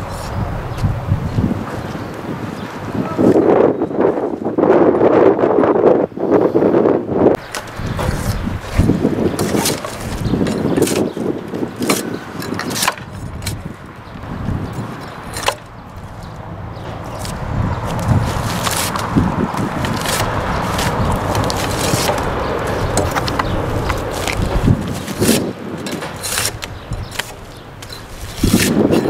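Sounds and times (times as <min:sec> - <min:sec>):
drawknife scraping bark: 0:07.4 - 0:13.7, 0:15.0 - 0:16.2, 0:16.9 - 0:29.0
loud rushing noise: 0:14.2 - 0:27.8
blade knocking on wood: 0:16.8 - 0:28.0.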